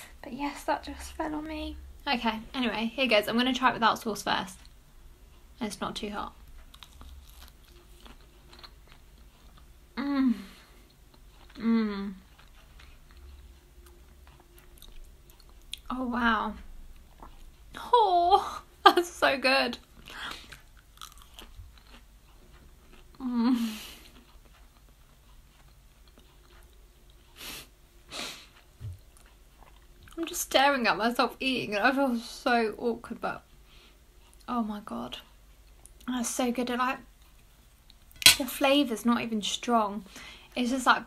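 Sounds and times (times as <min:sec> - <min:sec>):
faint chewing: 0:04.4 - 0:19.0, 0:19.8 - 0:30.6, 0:33.4 - 0:38.3.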